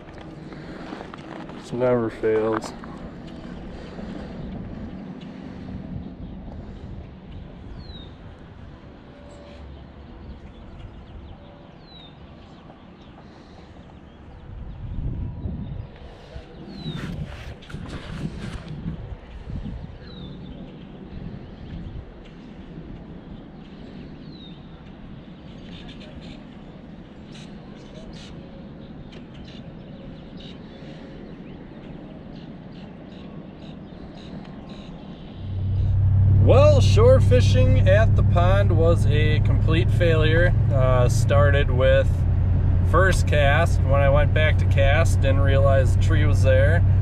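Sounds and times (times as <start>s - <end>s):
wind rumble on microphone: 0.0s - 47.0s.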